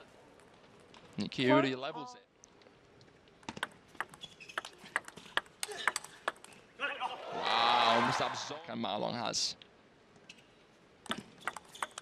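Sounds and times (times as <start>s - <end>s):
table tennis ball clicking: 3.4s - 6.6s, 11.1s - 12.0s.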